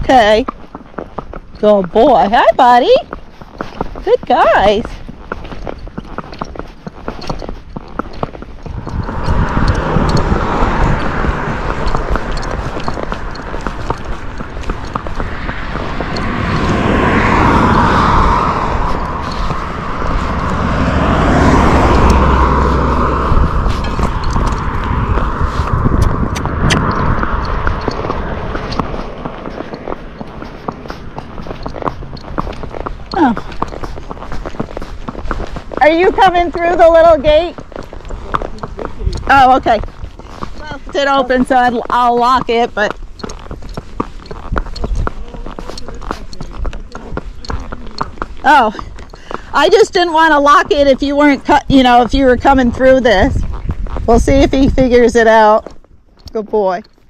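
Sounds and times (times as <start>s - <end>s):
horse hooves on asphalt: 0.0s - 57.0s
car passing close by: 8.6s - 42.6s.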